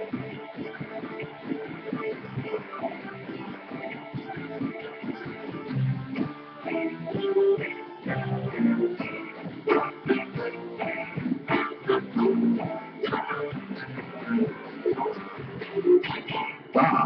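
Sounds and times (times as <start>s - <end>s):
strummed and plucked guitar: 0.0s - 17.0s.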